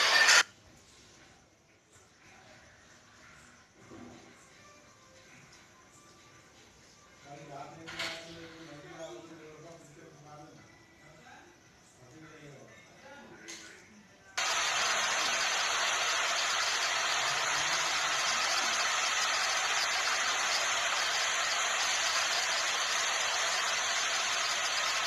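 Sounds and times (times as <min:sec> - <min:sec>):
loud steady hiss: 0:14.4 - 0:25.0.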